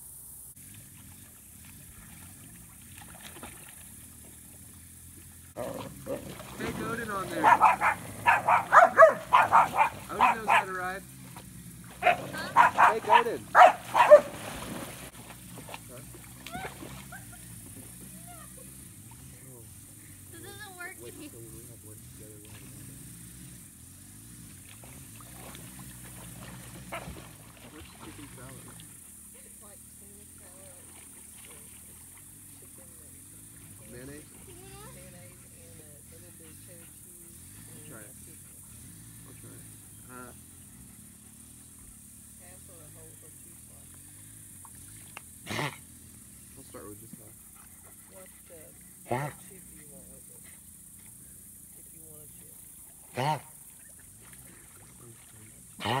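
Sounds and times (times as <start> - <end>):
dogs splashing in water: 0.6 - 20.3, 21.1 - 56.0
dog sounds: 5.6 - 10.9, 12.0 - 14.4
faint voices: 6.6 - 11.1
sharp loud splash: 13.6 - 17.0, 24.8 - 28.8.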